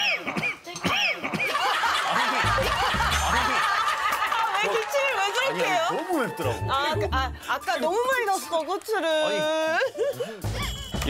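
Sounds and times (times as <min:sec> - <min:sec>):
group of people laughing: 0:01.2 - 0:06.7, 0:08.9 - 0:11.0.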